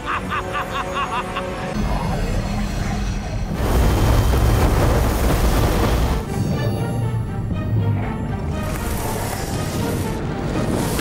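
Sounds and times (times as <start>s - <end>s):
deep rumbling surge: 1.8s - 6.4s.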